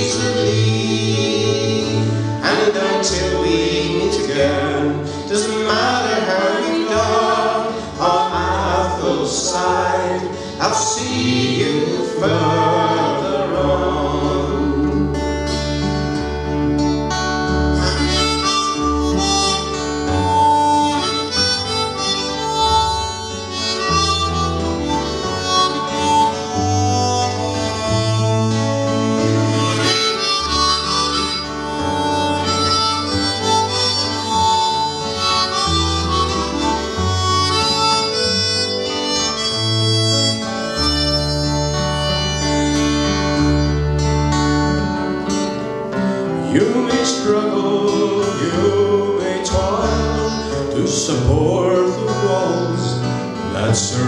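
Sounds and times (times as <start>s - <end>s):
harmonica melody: 0.0s - 54.0s
strummed acoustic guitars: 0.0s - 54.0s.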